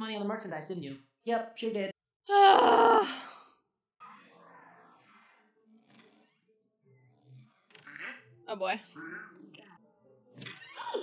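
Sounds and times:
person sighing: 2.3s - 3.4s.

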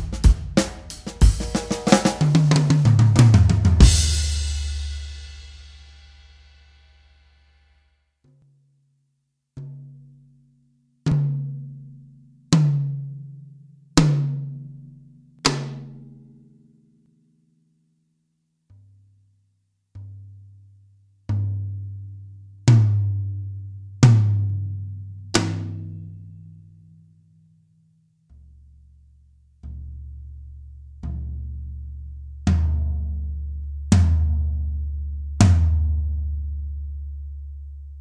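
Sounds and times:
tom drum struck with stick: 0.0s - 6.7s, 15.4s - 16.0s.

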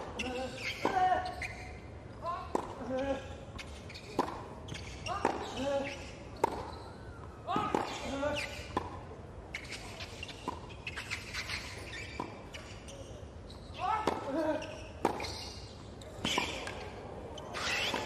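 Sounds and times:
racket hitting tennis ball: 4.1s - 4.5s, 6.4s - 6.7s, 7.6s - 9.0s, 14.0s - 15.3s.

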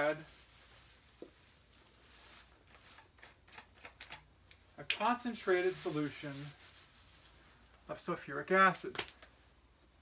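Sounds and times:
faint rustling: 5.2s - 7.9s.

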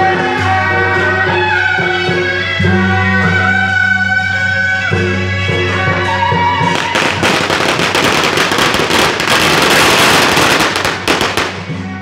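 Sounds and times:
band music: 0.0s - 12.0s
firecrackers crackling: 6.6s - 12.0s.

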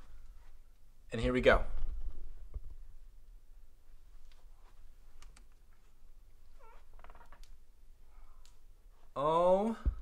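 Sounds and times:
door hinges squeaking: 6.6s - 7.5s.

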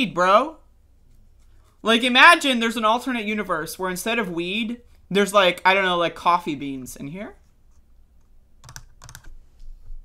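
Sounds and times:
computer keyboard clicks: 8.6s - 9.4s.

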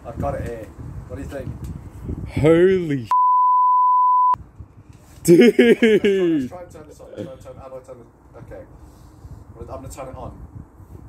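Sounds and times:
censor bleep tone: 3.1s - 4.4s.

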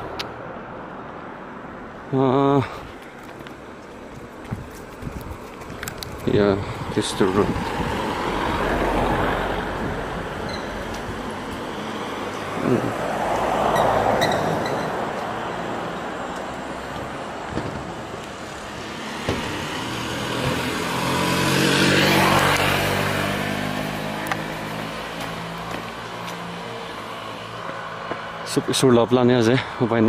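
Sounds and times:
vehicles passing close by: 0.0s - 30.0s.

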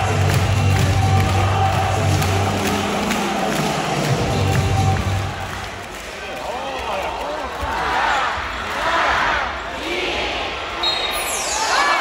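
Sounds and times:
arena crowd murmur: 0.8s - 11.0s.

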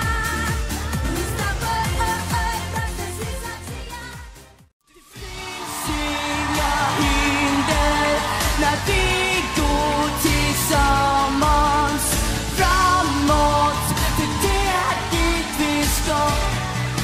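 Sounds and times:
pop song: 0.0s - 17.0s
pop song with girl singing: 0.0s - 17.0s.

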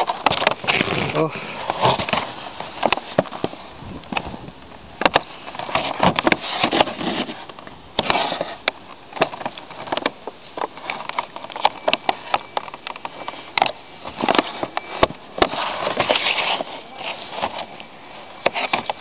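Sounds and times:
plastic packaging crackling: 0.0s - 19.0s.

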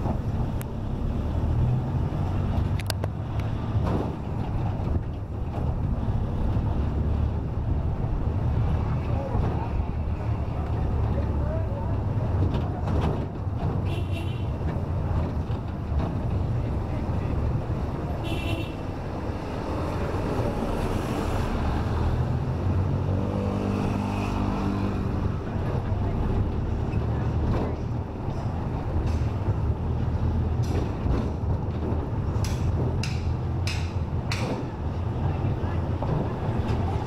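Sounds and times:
vehicle engine rumble and road noise: 0.0s - 37.0s.

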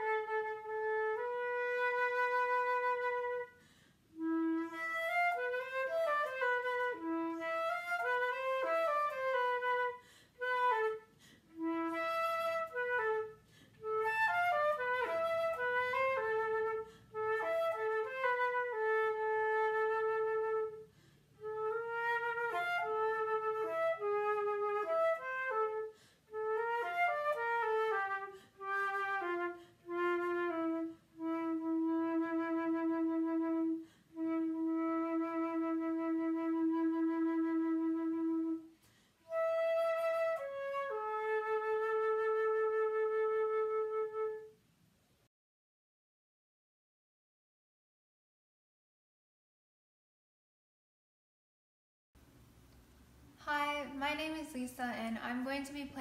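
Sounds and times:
flute solo: 0.0s - 44.6s
flutist breathing: 3.5s - 4.2s, 10.0s - 10.4s, 11.1s - 11.6s, 13.4s - 13.9s, 16.8s - 17.2s, 20.8s - 21.4s, 25.9s - 26.4s, 28.3s - 28.7s, 33.8s - 34.2s, 38.7s - 39.3s.

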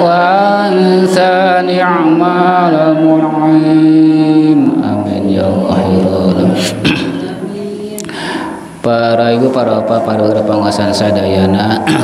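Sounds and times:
man chanting a prayer: 0.0s - 7.8s, 8.8s - 12.0s.

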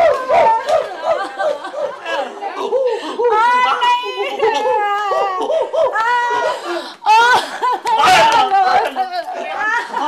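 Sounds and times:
woman's high-pitched wordless cries: 3.2s - 8.1s.

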